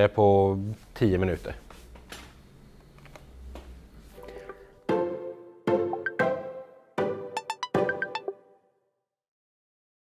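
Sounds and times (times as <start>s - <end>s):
loud chord: 4.9s - 8.6s
short musical jingle: 5.0s - 8.6s.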